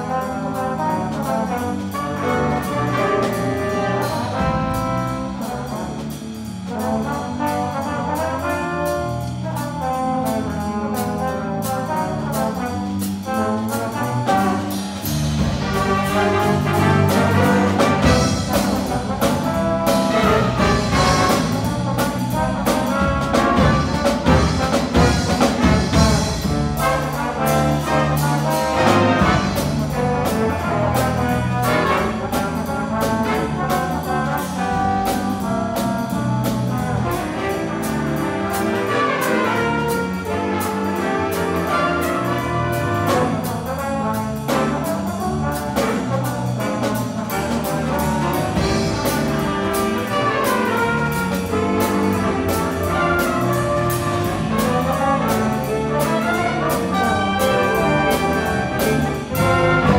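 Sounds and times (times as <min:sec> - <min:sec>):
jazz big band playing: 0:00.0 - 0:59.9.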